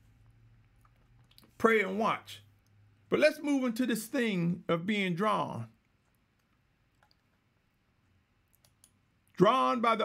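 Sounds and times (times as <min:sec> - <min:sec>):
faint clicks: 0:05.8 - 0:07.4.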